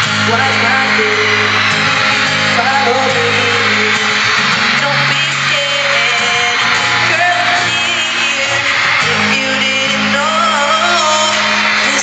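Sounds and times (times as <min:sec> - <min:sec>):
fans screaming and cheering: 0:00.0 - 0:12.0
live pop music with singing: 0:00.0 - 0:12.0.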